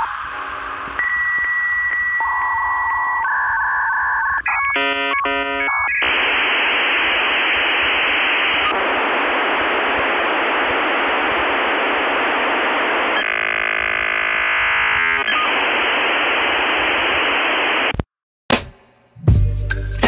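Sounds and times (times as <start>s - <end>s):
electronic tones: 0.9s - 9.1s, 10.8s - 17.5s.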